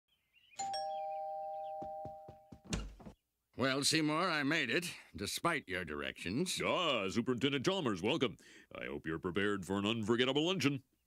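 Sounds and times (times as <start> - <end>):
ding-dong doorbell chime: 0.6 - 2.5.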